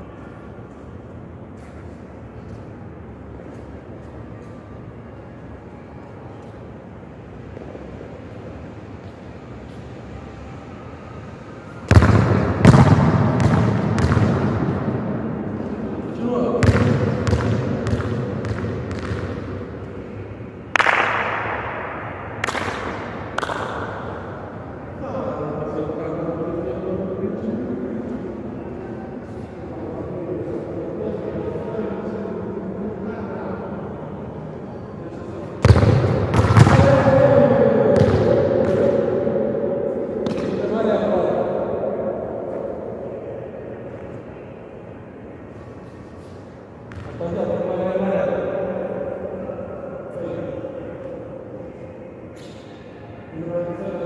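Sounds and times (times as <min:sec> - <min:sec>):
football kicked and bouncing: 0:11.9 - 0:14.7, 0:16.6 - 0:19.4, 0:37.9 - 0:38.8.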